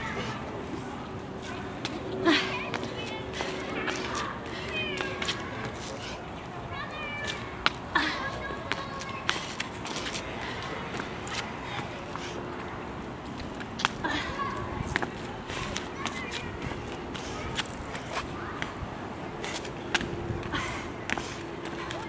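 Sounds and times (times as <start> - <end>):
distant children calling: 0.0 - 22.0
park background noise: 0.0 - 22.0
hands and shoes slapping paving: 1.4 - 6.3, 6.9 - 22.0.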